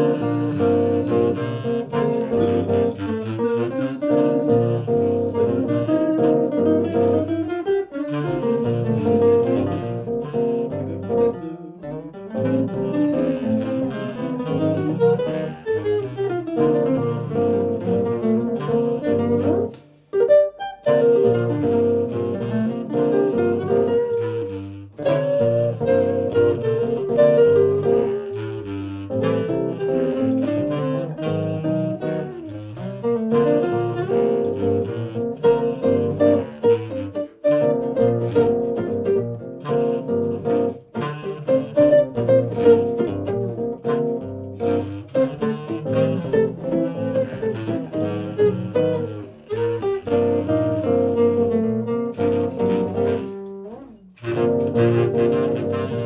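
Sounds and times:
amplified nylon-string guitar: 0.0 - 56.0
bass clarinet: 0.0 - 56.0.

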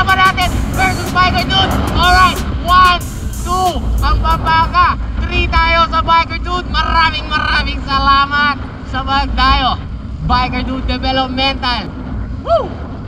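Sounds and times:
high-pitched voices: 0.0 - 4.8
wind on microphone: 0.0 - 13.0.

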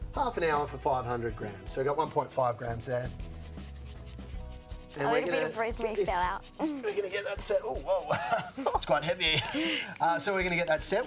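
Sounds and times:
soft rubbing and handling noise: 2.3 - 11.0.

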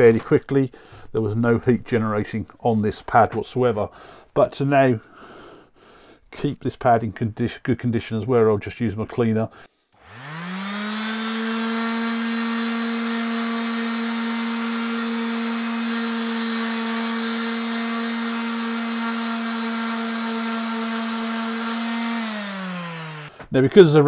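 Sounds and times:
orbit sander motor humming: 10.0 - 23.4.

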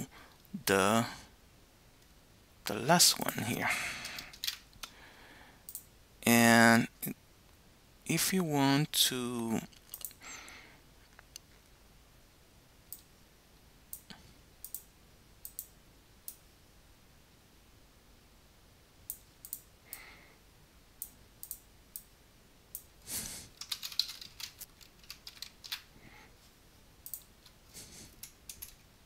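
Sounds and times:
faint room hiss: 0.0 - 29.0
computer keys clicking: 4.0 - 4.9, 14.0 - 15.7, 21.0 - 22.1, 23.6 - 25.9, 27.0 - 27.6, 28.2 - 28.8.

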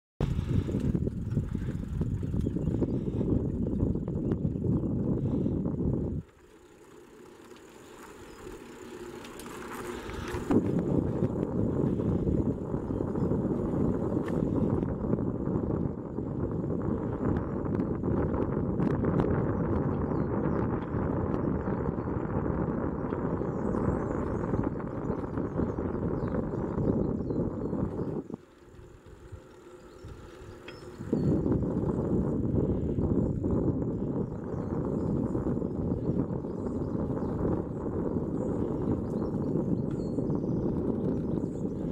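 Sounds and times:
wind on microphone: 0.2 - 6.4, 9.4 - 41.9
bicycle tyres rolling on asphalt: 0.2 - 41.9.

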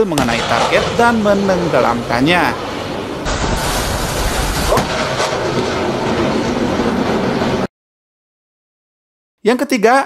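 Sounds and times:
missile launch roar: 0.0 - 7.7
sharp crack: 0.1 - 2.6, 3.2 - 6.6.

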